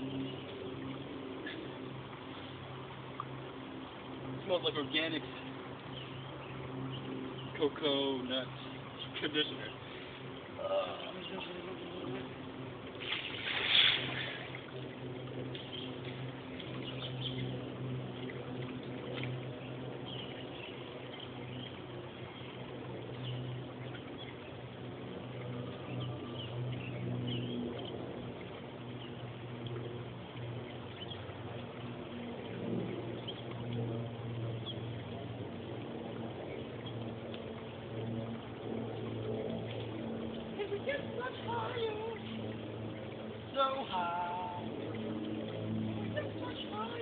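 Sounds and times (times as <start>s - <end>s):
low even hum: 0.0s - 47.0s
soft hiss: 7.8s - 14.7s.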